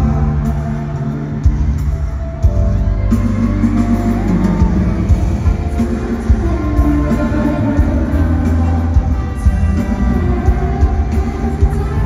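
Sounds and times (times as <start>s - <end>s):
live pop song over loudspeakers: 0.0s - 12.0s.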